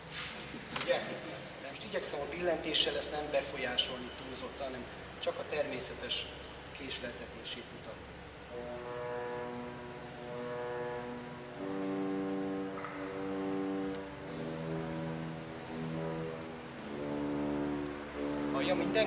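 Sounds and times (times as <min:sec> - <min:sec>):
pipe organ chords: 0:08.0 - 0:19.0.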